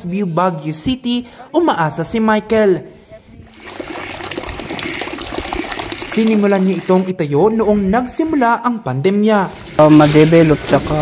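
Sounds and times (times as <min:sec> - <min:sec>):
water rushing and splashing: 0:03.5 - 0:07.2.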